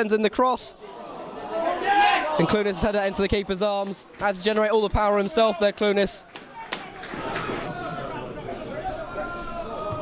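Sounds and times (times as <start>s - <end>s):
background hubbub: 0.0s - 10.0s.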